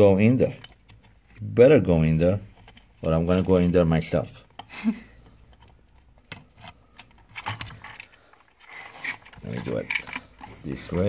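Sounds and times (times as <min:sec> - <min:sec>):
plastic and metal parts clicking: 0:00.2 - 0:11.0.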